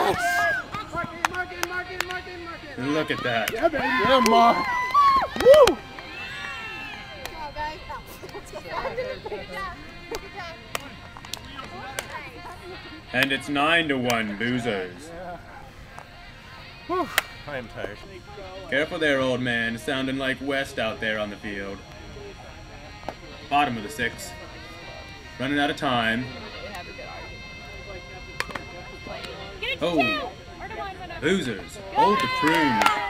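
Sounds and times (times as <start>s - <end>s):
faint voices: 0.0s - 33.0s
players talking and calling out: 0.0s - 33.0s
bat hitting ball: 17.1s - 17.4s
hand slaps: 17.1s - 17.4s.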